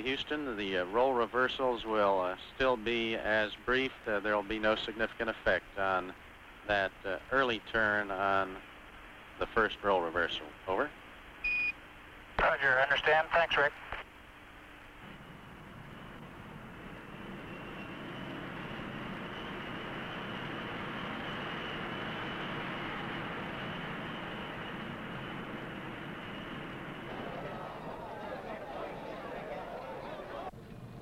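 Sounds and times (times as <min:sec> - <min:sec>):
steady rushing noise: 0:15.0 - 0:29.4
indistinct crowd voices: 0:26.6 - 0:30.6.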